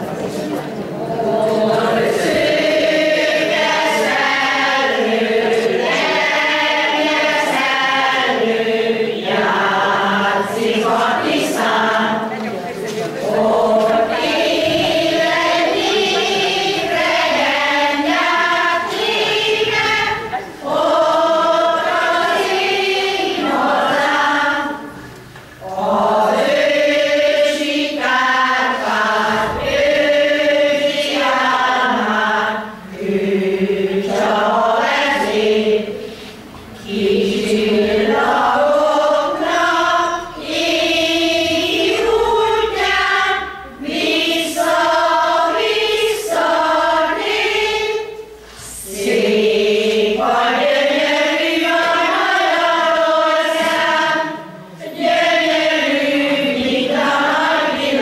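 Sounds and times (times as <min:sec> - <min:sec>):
women's choir singing: 0:00.0 - 0:58.0.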